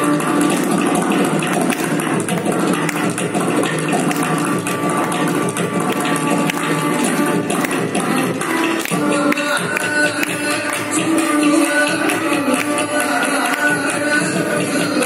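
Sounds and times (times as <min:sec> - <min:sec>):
ghatam strokes: 0:00.0 - 0:15.0
mridangam strokes: 0:00.0 - 0:15.0
person singing: 0:08.1 - 0:15.0.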